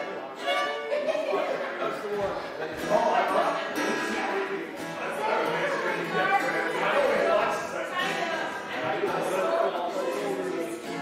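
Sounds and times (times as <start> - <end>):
guitars and fiddle folk music: 0.0 - 11.0
people chattering: 0.0 - 11.0.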